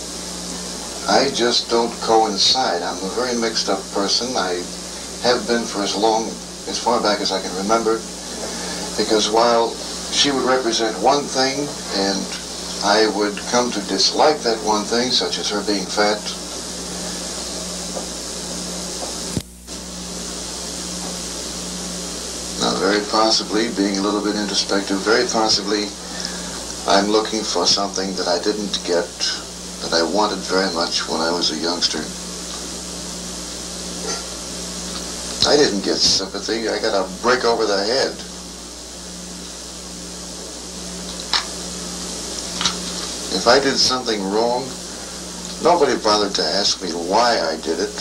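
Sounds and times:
electrical hum: 0.0 - 48.0
recording hiss: 0.0 - 48.0.

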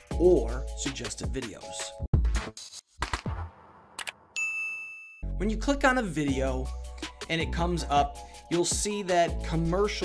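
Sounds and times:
bright bell ding: 4.4 - 5.2.

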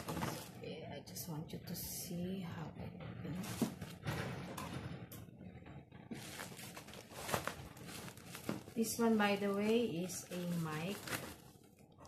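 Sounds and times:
plastic mailer bag rustling: 0.0 - 0.6, 6.1 - 12.0.

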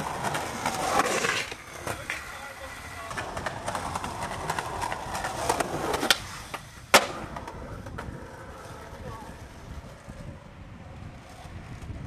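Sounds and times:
skateboard landing crack: 0.0 - 2.2, 3.1 - 8.3
skateboard wheels rolling on concrete: 0.0 - 12.0
skateboard pop: 3.1 - 8.1.

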